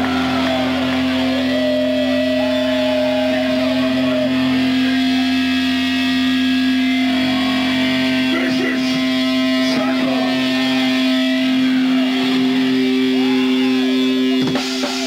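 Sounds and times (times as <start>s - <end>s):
distorted electric guitar drone: 0.0s - 15.0s
wavering higher guitar note: 0.0s - 15.0s.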